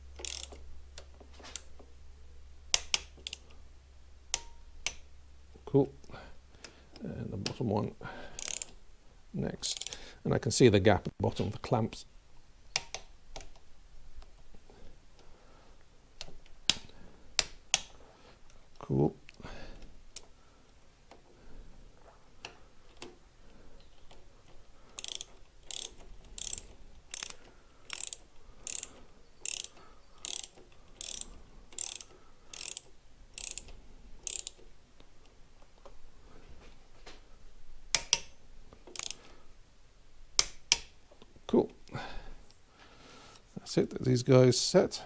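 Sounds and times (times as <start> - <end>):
ratchet wrench clicking: 0.2 - 1.7, 2.7 - 3.5, 8.4 - 8.8, 9.7 - 10.0, 25.0 - 34.6, 37.9 - 38.3, 38.9 - 39.2.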